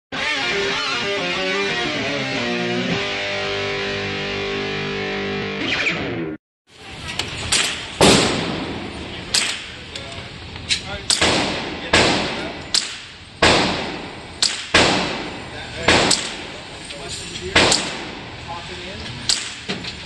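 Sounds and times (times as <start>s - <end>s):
rifle gunshots indoors: 8.0s - 9.6s, 11.1s - 16.6s, 17.5s - 18.3s.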